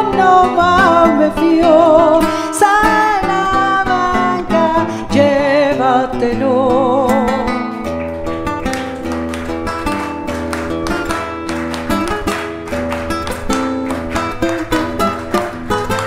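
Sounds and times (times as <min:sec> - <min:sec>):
acoustic guitar strumming and plucking: 0:00.0 - 0:16.0.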